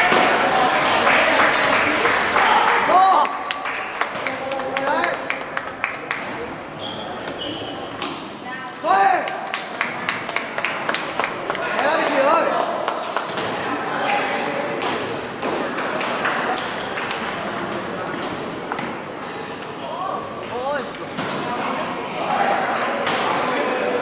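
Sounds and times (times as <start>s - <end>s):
voices in a hall: 0.0s - 24.0s
table tennis balls clicking: 14.8s - 19.8s.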